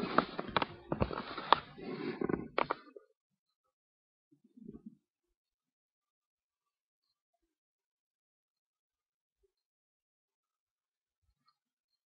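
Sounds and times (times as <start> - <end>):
rustling: 0.0 - 2.8.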